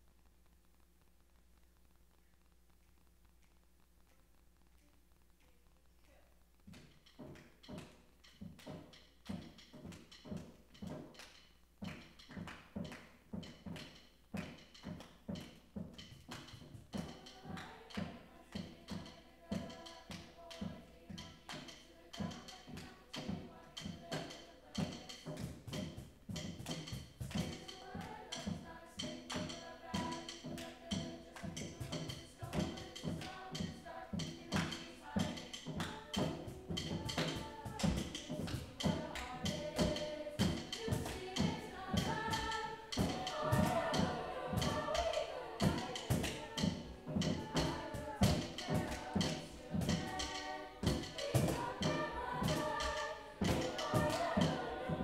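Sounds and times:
hand drum groove: 6.7 - 55.0
choir singing: 16.3 - 55.0.

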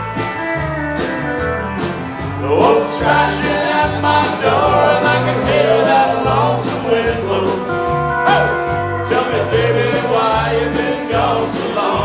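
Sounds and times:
country band playing: 0.0 - 12.0
pedal steel guitar sliding notes: 0.2 - 9.3.

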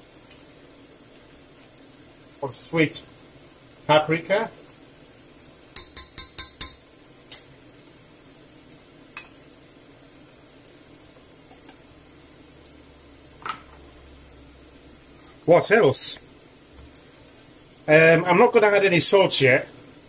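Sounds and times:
sauce sizzling in oil: 0.0 - 20.0
metal spoon clinking on pot: 5.8 - 7.4.

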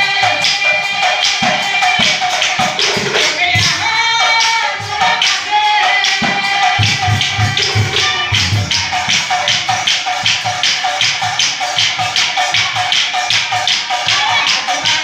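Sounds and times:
drums beating fast rhythm: 0.0 - 15.0
hand cymbals: 0.0 - 15.0.

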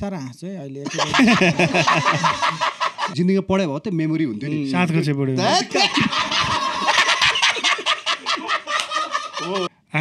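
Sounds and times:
men laughing: 0.9 - 3.2, 5.4 - 9.7.

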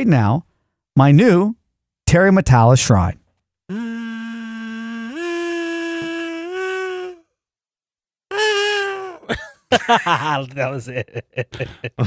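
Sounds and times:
kazoo held notes: 3.7 - 7.3, 8.3 - 9.4.

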